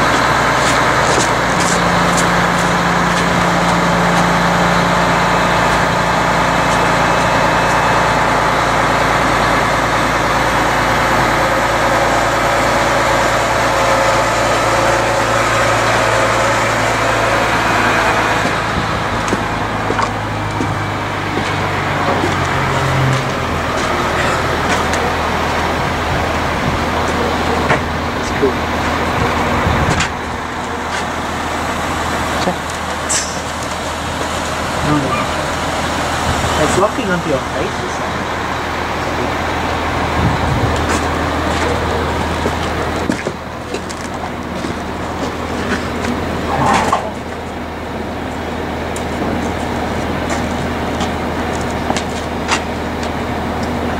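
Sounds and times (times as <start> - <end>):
diesel engine running: 0.0 - 53.9.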